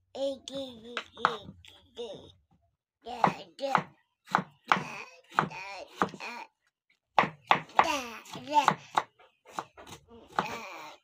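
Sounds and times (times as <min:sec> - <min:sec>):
person talking: 0:00.2 - 0:02.4
knife chopping on wooden board: 0:03.2 - 0:06.2, 0:07.2 - 0:10.6.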